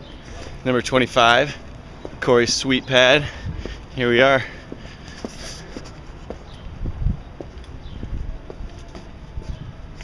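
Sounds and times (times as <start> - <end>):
footsteps walking: 0.2 - 10.0.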